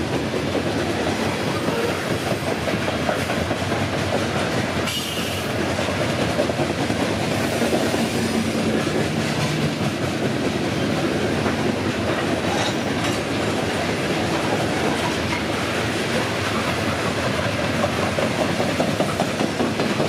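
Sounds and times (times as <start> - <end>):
freight train rumble: 0.0 - 20.0
wheels clicking over rail joints: 0.0 - 20.0.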